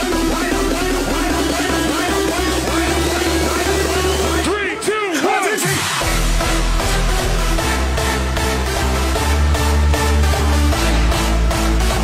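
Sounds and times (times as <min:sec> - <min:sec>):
driving rolling bassline: 0:00.0 - 0:04.6, 0:06.0 - 0:12.0
psytrance dance track: 0:00.0 - 0:12.0.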